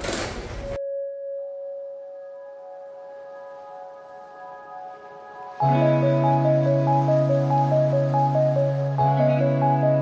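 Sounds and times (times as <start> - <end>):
ambient music bell-like tones: 0.8 - 10.0.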